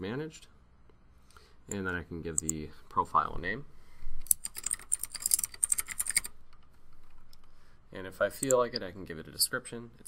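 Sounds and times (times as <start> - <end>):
typing on computer keyboard: 4.3 - 7.5.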